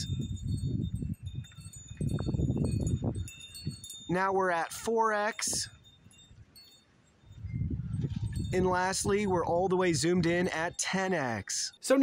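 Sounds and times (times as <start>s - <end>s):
wind rumble on microphone: 0.0s - 4.4s, 5.3s - 10.8s
wind chimes ringing: 0.0s - 12.0s.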